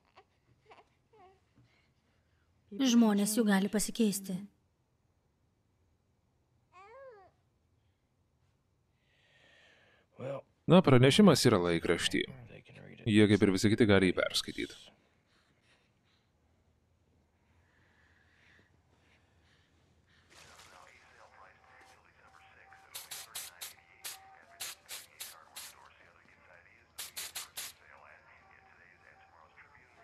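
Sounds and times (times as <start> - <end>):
newborn baby whimpering: 0.0 - 1.4, 6.8 - 7.4
faint breath: 8.9 - 10.2, 15.0 - 20.7.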